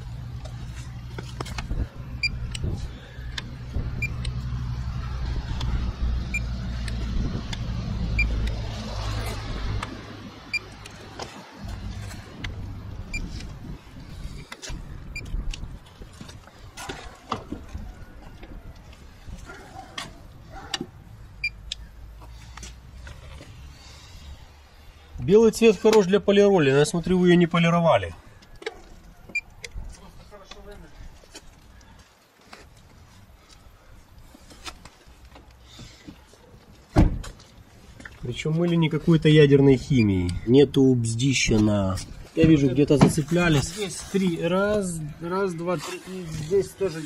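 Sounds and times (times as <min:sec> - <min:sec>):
low steady rumble: 0:11.6 - 0:16.2.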